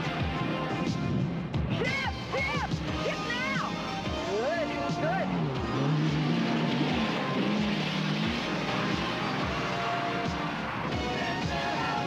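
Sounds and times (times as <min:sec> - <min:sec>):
car engine driving on dirt: 0:04.3 - 0:12.0.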